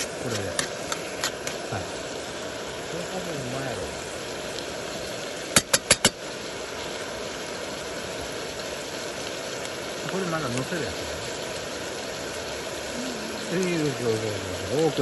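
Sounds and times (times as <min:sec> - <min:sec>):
gas burner running: 0:00.0 - 0:06.8
meat sizzling in a pan: 0:00.0 - 0:15.0.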